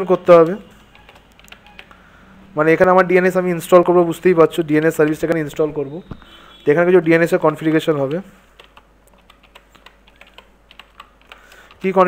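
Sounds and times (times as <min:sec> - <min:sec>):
computer keyboard typing: 0:00.1 - 0:02.0, 0:04.5 - 0:05.7, 0:06.8 - 0:12.0.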